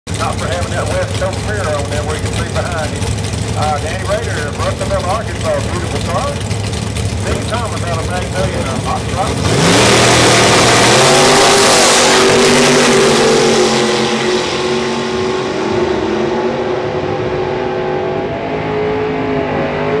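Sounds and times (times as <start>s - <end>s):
drag racing cars accelerating: 0.1s - 20.0s.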